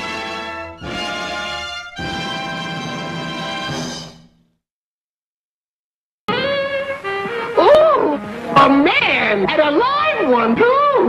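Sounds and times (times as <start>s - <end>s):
orchestral fanfare: 0.0s - 4.2s.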